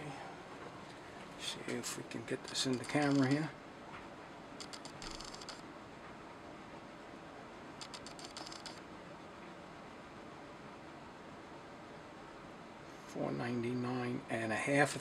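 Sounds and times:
faint steady hum: 0.0s - 15.0s
caliper jaw clicking and scraping: 2.6s - 3.5s, 4.6s - 5.6s, 7.8s - 8.8s.

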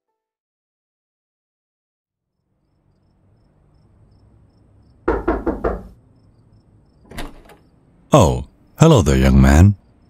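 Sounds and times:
faint background hum: 2.3s - 10.0s
knocks on a door: 5.0s - 6.0s.

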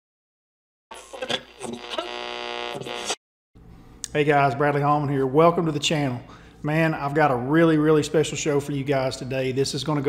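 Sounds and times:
buzzy electronic tone: 0.9s - 3.2s.

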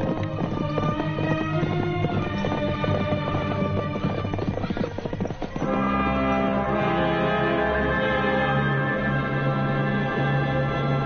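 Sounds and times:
horse hoofbeats clip-clopping: 0.0s - 11.0s
orchestral film score: 0.1s - 11.0s.

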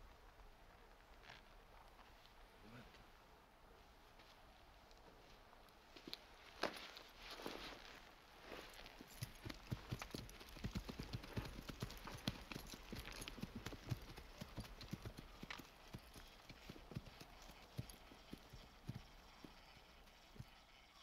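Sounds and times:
hooves clopping on frosty ground: 0.0s - 21.0s.

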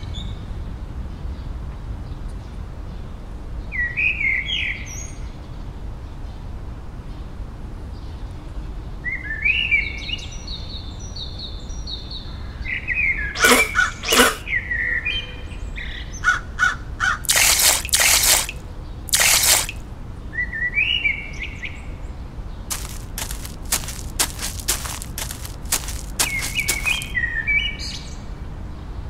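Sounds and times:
sharp bursts of noise: 17.3s - 19.8s, 22.7s - 27.1s
birds chirping: 22.7s - 27.2s.

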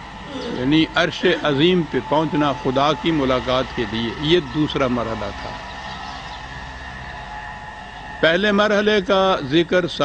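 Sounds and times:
faint steady tones: 0.0s - 10.0s.

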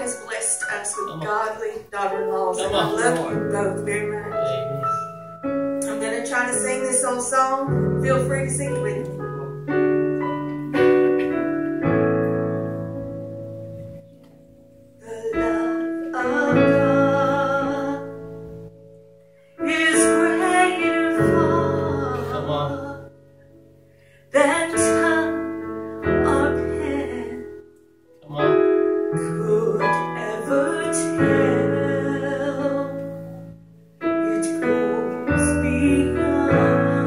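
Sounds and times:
electric keyboard piano chords: 0.0s - 37.0s
woman singing: 5.8s - 9.1s, 15.0s - 18.4s, 19.6s - 23.1s, 24.3s - 27.6s, 29.2s - 33.3s, 34.2s - 37.0s.

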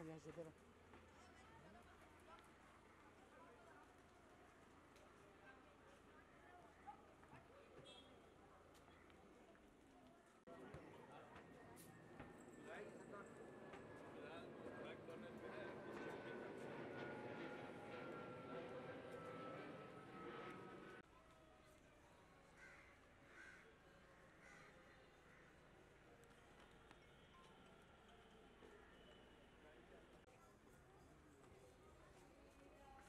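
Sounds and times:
faint voices of people talking: 0.0s - 33.0s
crow cawing: 22.6s - 25.6s.

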